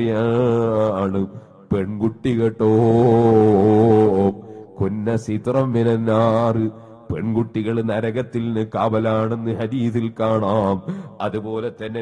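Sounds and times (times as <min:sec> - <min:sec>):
man reciting in sing-song chant: 0:00.0 - 0:12.0.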